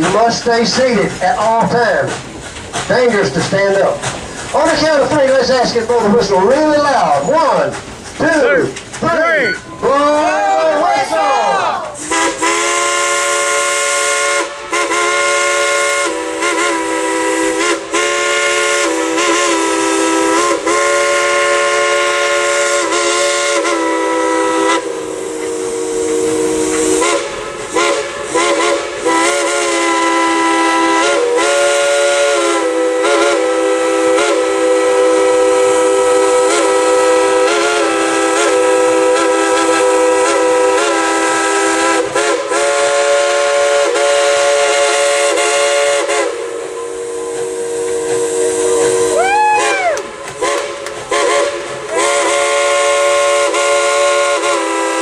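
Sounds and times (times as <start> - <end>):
steam hissing: 0.0 - 9.8, 11.8 - 55.0
steam locomotive whistle: 9.2 - 55.0.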